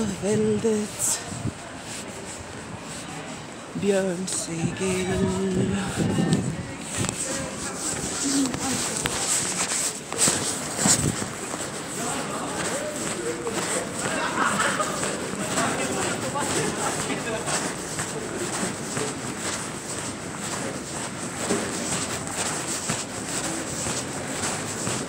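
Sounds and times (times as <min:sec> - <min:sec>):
footsteps: 0:00.0 - 0:25.0
indistinct voices: 0:00.0 - 0:25.0.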